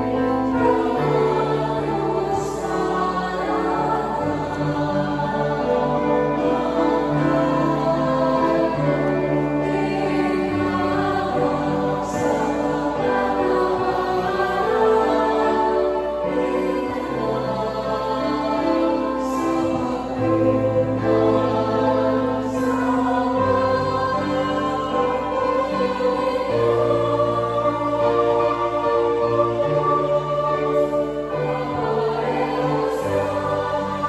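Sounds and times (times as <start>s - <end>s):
youth choir singing a hymn: 0.0s - 34.0s.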